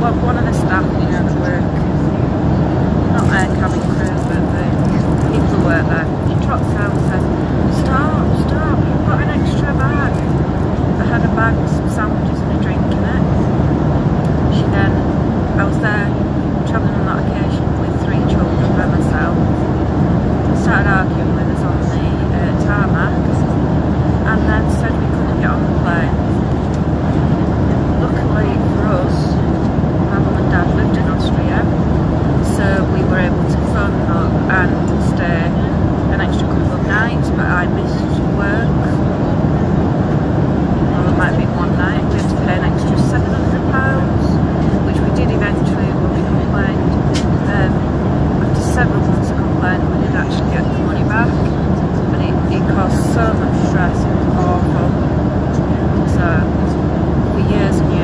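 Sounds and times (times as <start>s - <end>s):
jet engine cabin roar: 0.0s - 58.0s
woman talking: 0.0s - 58.0s.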